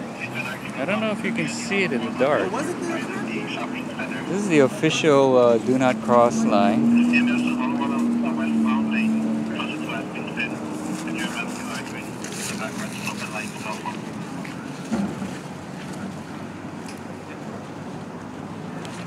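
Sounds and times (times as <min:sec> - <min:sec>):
indistinct voices outdoors: 0:00.0 - 0:19.0.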